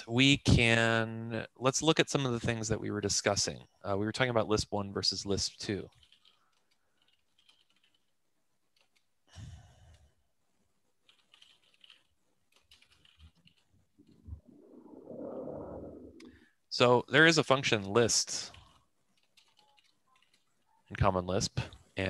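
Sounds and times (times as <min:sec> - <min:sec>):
typing on computer keyboard: 0:05.8 - 0:09.1, 0:11.0 - 0:14.2, 0:18.5 - 0:20.9
muffled low noise: 0:14.0 - 0:16.4.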